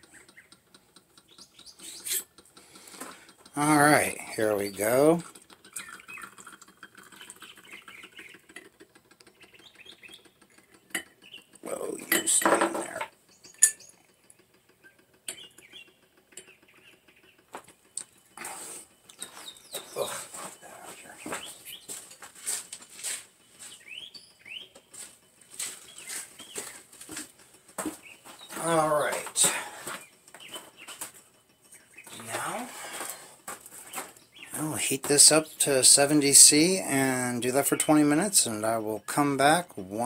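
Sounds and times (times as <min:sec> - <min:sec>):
bird chirps: 0:00.0 - 0:02.3, 0:05.6 - 0:08.5, 0:09.2 - 0:11.6, 0:13.3 - 0:14.1, 0:14.8 - 0:22.1, 0:23.4 - 0:27.0, 0:27.9 - 0:33.1, 0:33.8 - 0:35.7
liquid pouring into glass beaker: 0:05.7 - 0:08.4
glassware clinking and knocking: 0:12.0 - 0:13.8.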